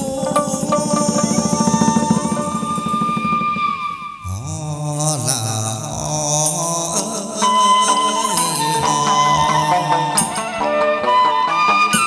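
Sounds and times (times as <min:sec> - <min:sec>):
steady high note: 0:00.0 - 0:04.3
traditional ensemble music: 0:00.0 - 0:04.4, 0:06.0 - 0:12.0
singer's sliding chanted notes: 0:00.0 - 0:04.9.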